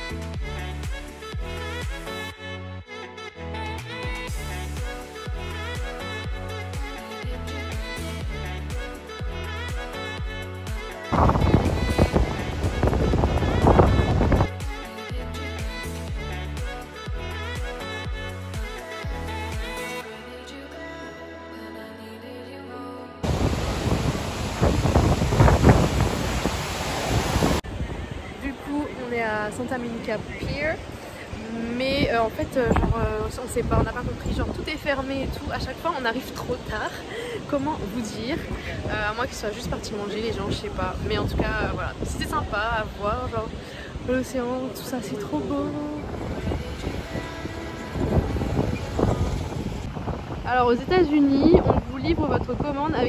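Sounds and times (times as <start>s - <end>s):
background music: 0.0s - 26.2s, 26.8s - 53.0s
ocean surf breaking: 11.1s - 14.5s, 23.2s - 31.8s, 42.0s - 52.0s
wind buffeting microphone: 11.1s - 14.5s, 23.2s - 53.0s
faint background music: 27.6s - 53.0s
street traffic rumble: 44.8s - 52.8s.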